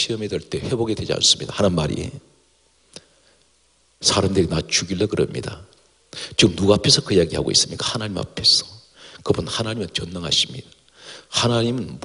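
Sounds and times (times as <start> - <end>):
man speaking: 0.0 - 2.3, 4.0 - 5.7, 6.3 - 12.0.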